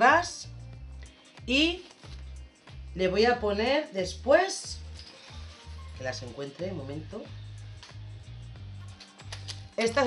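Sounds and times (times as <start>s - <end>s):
woman's voice: 0.0s - 0.5s, 1.4s - 1.9s, 3.0s - 4.8s, 6.0s - 7.4s, 9.8s - 10.0s
soft background music: 0.0s - 10.0s
plastic bag clicks: 9.0s - 10.0s.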